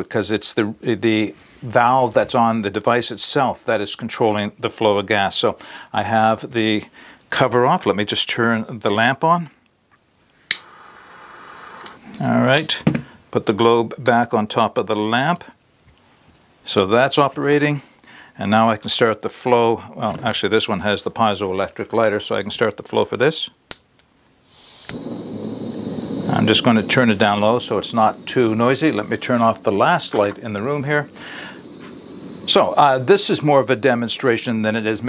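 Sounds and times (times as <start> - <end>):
gas flame hissing: 10.5 - 12.2, 24.5 - 35.0
stove burner burning noisily: 24.6 - 35.0
lighter click: 24.8 - 26.4.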